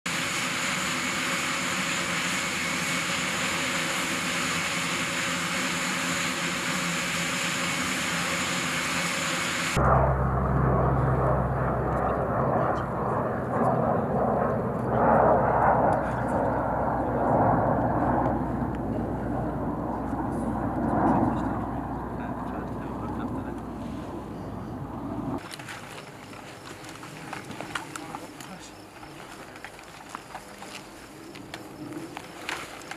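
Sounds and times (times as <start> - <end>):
aircraft engines running: 0.1 - 32.9
low rumble: 9.7 - 25.4.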